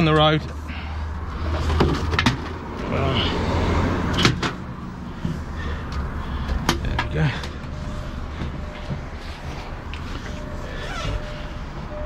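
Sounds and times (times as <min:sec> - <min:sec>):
diesel truck engine idling: 0:02.7 - 0:12.0.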